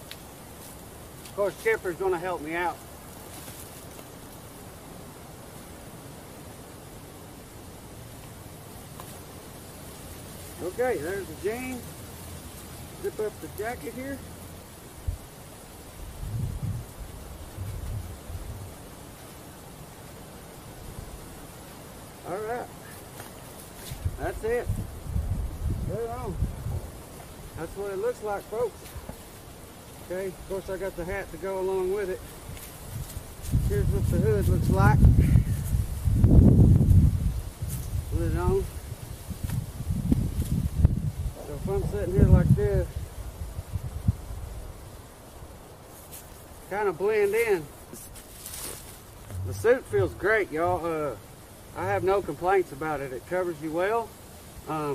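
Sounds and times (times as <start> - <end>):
faint outdoor hiss: 0.0 - 54.9
wind buffeting microphone: 16.0 - 18.8, 23.9 - 27.6, 32.4 - 45.0, 49.2 - 52.4
soft low thump: 49.3 - 50.3.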